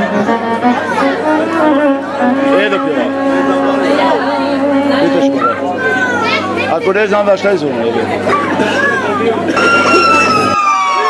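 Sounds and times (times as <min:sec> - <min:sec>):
children calling and shouting: 0:00.0 - 0:11.0
general chatter: 0:00.0 - 0:11.0.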